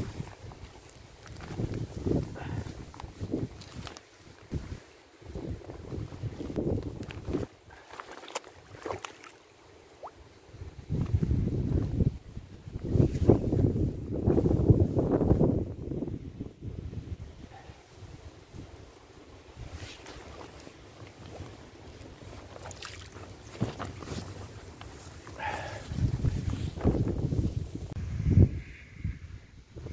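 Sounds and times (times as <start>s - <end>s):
wind buffeting microphone: 0.0s - 7.7s, 10.5s - 18.8s, 25.4s - 29.9s
water sloshing and splashing: 6.9s - 10.4s, 19.9s - 26.6s.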